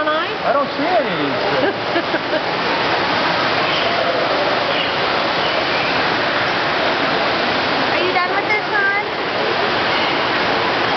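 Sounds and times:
waterfall rushing: 0.0 - 10.9.

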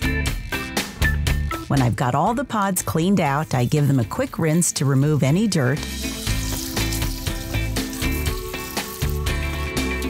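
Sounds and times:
background music with beat: 0.0 - 4.0, 5.3 - 10.0
tap water running: 3.2 - 10.0.

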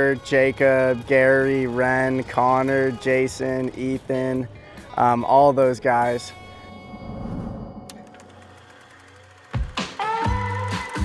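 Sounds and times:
soft low rush: 6.2 - 8.9.

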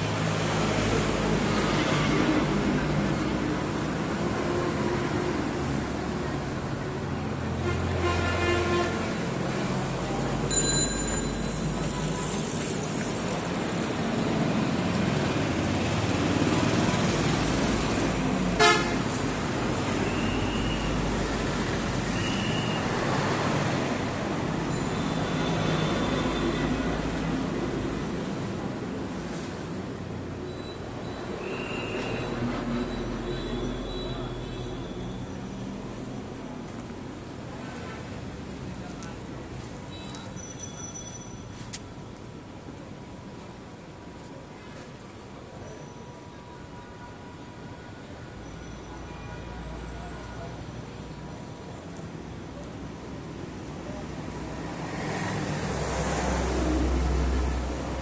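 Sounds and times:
road traffic rumble: 0.0 - 58.0
vehicle horns tooting: 18.6 - 19.1.

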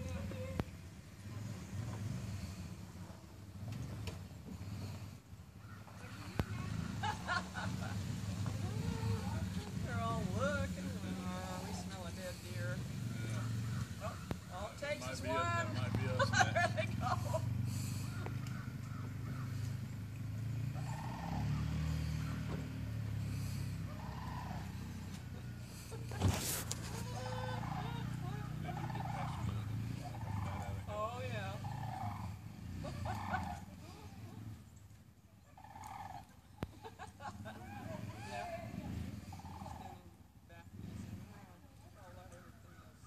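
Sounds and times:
warbling animal call: 20.8 - 22.5, 23.2 - 25.9, 26.6 - 30.9, 31.6 - 34.0, 35.5 - 36.4, 39.2 - 40.1.

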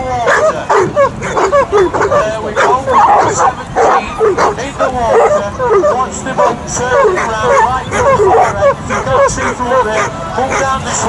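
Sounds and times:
babble of voices: 0.0 - 11.0
dogs yelping and whining: 0.2 - 10.8.

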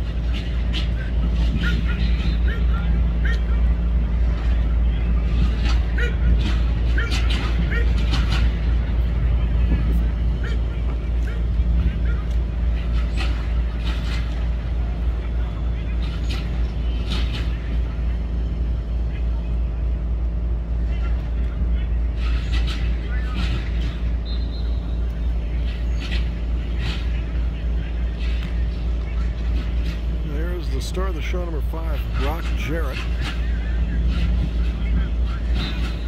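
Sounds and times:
steady low rumble: 0.0 - 36.0
distant shouts and calls: 1.6 - 4.0, 10.0 - 13.3.

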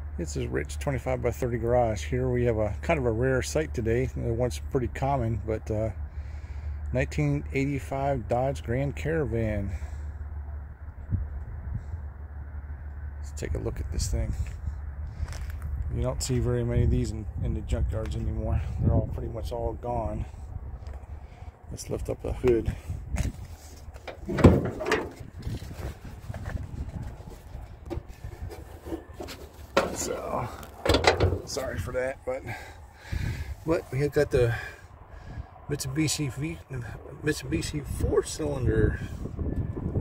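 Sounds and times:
low outdoor rumble: 0.0 - 40.0
car hood clunking and scraping: 23.2 - 32.0.

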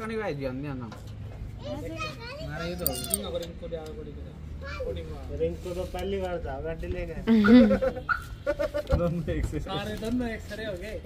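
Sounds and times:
young child's voice: 1.6 - 3.1.

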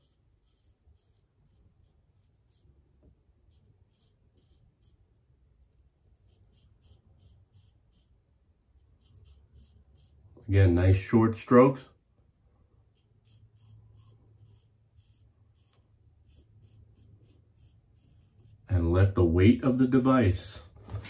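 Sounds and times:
razor scraping stubble: 0.0 - 11.8, 12.6 - 20.1.

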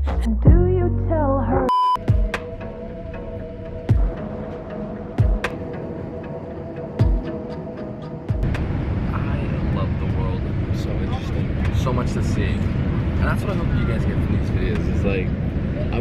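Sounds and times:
airliner cabin engine noise: 7.9 - 16.0.

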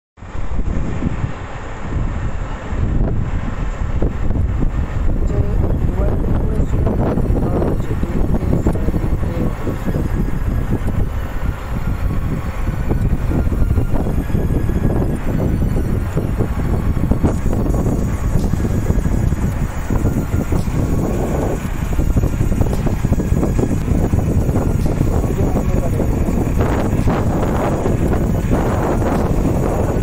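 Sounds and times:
wind buffeting microphone: 0.2 - 30.0.

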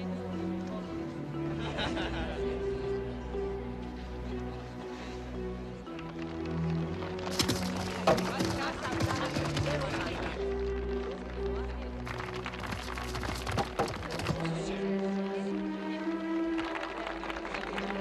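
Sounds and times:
film score music: 0.0 - 18.0.

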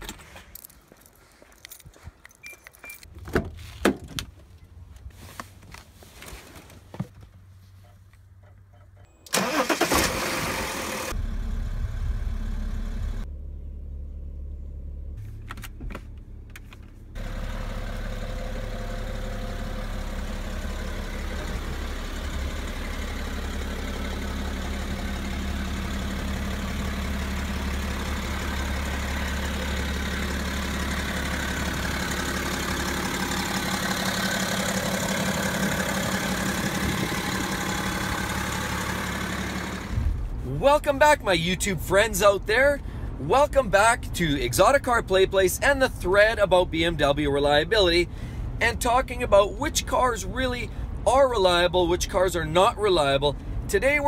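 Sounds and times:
car engine starting and running: 2.8 - 54.0.

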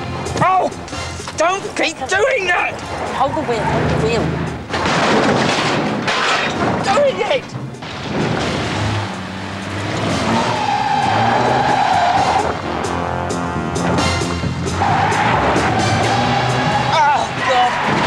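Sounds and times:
background music: 0.0 - 4.9, 6.6 - 18.0
car noise: 0.0 - 18.0
car tyres squealing: 8.3 - 12.8, 14.6 - 18.0.

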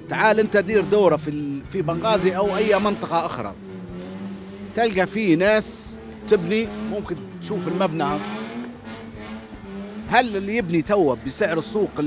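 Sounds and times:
motor vehicle passing by: 1.8 - 10.5.

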